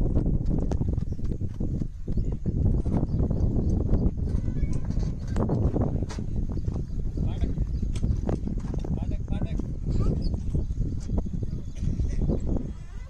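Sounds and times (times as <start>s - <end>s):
running footsteps on dirt: 0.0s - 11.8s
steady low rumble: 0.0s - 12.9s.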